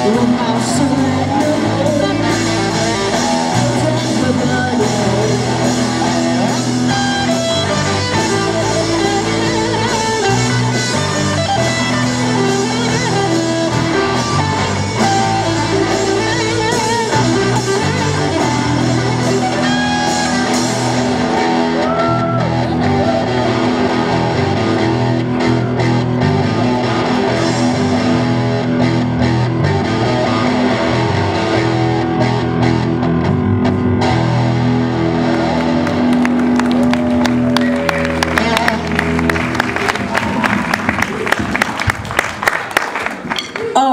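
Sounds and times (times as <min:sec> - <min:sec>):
live rock band playing: 0:00.0 - 0:43.9.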